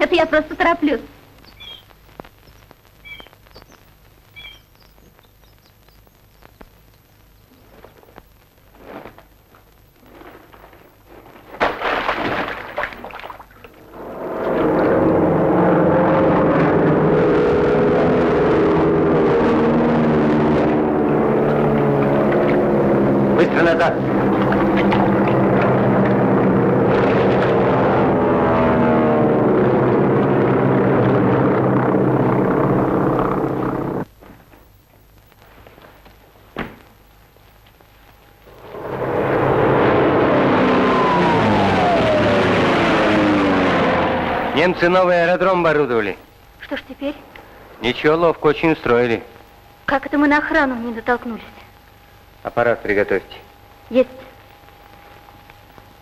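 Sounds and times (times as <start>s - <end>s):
piston aircraft engines droning: 13.7s - 34.1s, 38.1s - 46.4s
short burst of noise: 38.1s - 45.0s.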